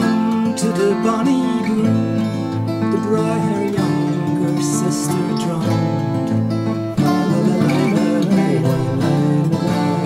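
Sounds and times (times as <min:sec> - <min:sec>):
acoustic guitar picked: 0:00.0 - 0:10.0
person singing folk ballad: 0:00.0 - 0:10.0.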